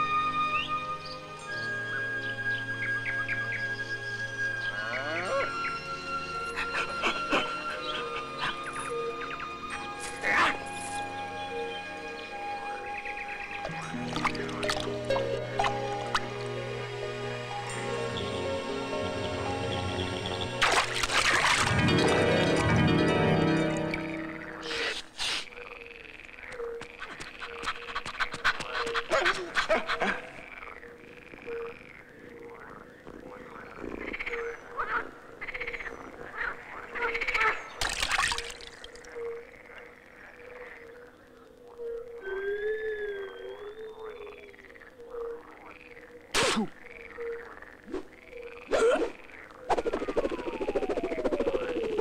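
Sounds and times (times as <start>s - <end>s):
frogs croaking: 0.5s - 21.7s, 23.4s - 52.0s
wavering whistle: 42.2s - 44.3s.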